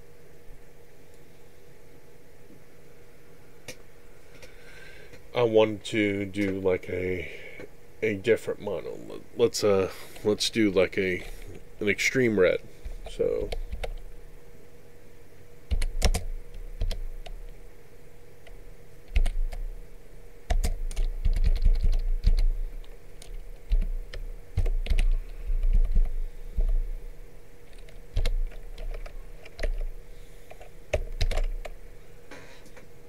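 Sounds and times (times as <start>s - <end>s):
faint steady hum: 0.0s - 33.0s
computer keyboard typing: 13.3s - 14.0s, 15.7s - 17.4s, 18.4s - 19.6s, 20.5s - 26.8s, 27.6s - 29.9s, 30.5s - 31.8s.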